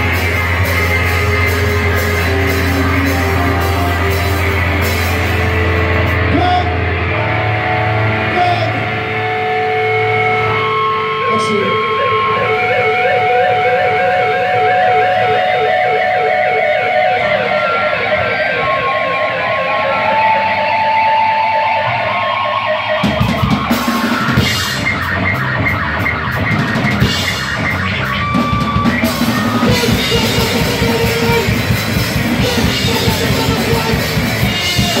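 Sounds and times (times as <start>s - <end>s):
wavering electric guitar notes: 0.0s - 35.0s.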